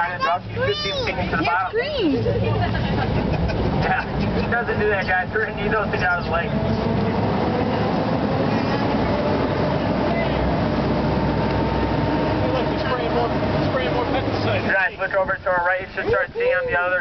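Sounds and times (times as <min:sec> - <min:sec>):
boat engine running: 0:00.0 - 0:17.0
water rushing past hull: 0:00.0 - 0:17.0.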